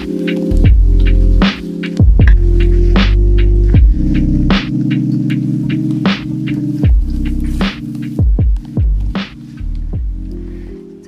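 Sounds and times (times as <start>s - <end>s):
slow drum beat: 0.0s - 10.4s
low synth drone: 0.1s - 1.4s, 2.1s - 10.8s.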